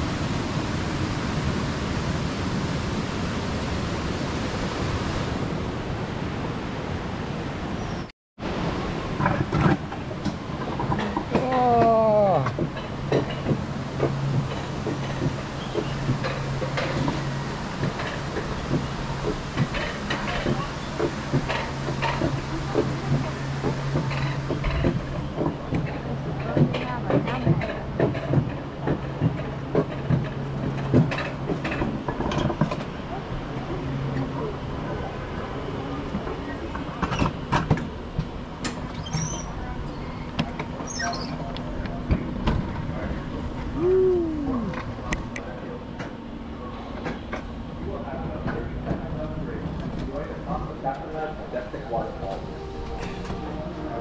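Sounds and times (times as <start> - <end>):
coaster sled rolling hum: 0.0 - 54.0
wheels clicking and rattling: 9.0 - 53.8.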